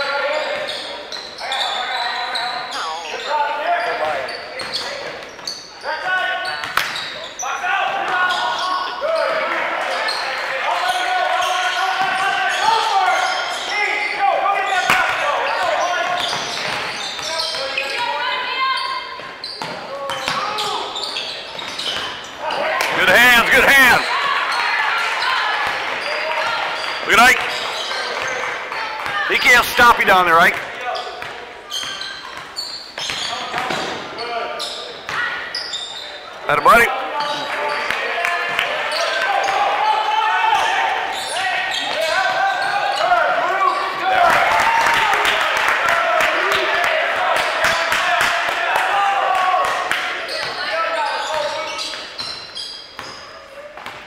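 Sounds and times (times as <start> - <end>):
sneaker squeaks: 0.2 - 13.9, 14.6 - 24.6, 25.2 - 38.0, 38.8 - 39.7, 40.6 - 44.0, 50.3 - 54.0
echoing indistinct voices: 22.4 - 31.7.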